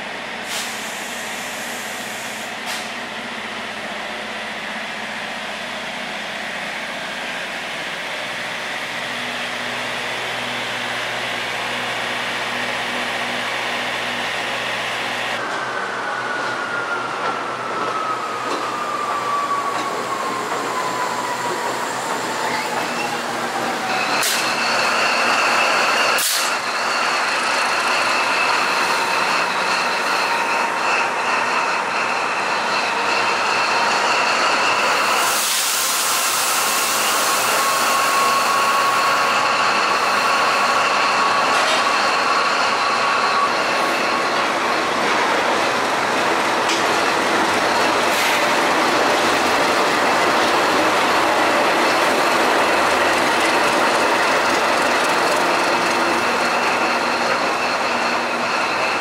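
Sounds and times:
diesel locomotive moving slowly: 0.0 - 59.0.

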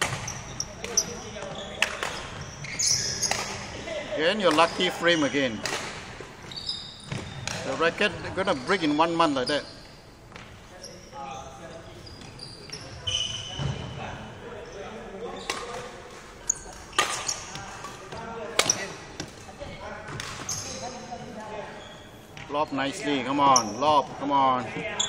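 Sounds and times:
racket hitting shuttlecock: 0.0 - 1.0, 3.1 - 3.7, 17.0 - 19.4
shoe squeaks: 0.0 - 3.8, 6.4 - 14.0, 14.7 - 15.7, 16.4 - 19.0, 20.4 - 24.0.

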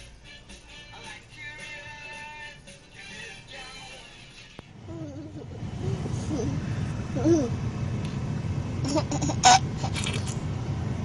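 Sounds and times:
music with singing from tv: 0.0 - 4.8
low rumble of car in motion: 4.6 - 11.0.

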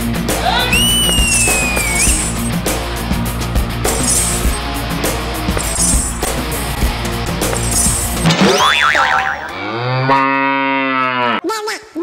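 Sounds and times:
music: 0.0 - 9.7
wobbling whistle-like tone: 0.7 - 2.4
cow mooing: 9.4 - 11.4.

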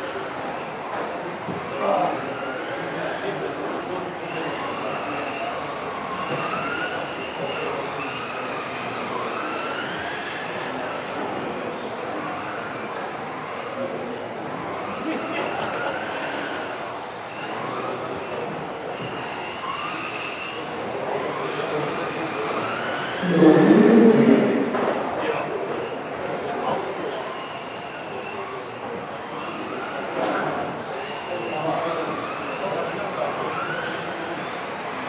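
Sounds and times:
rc car motors whining: 0.0 - 35.0.

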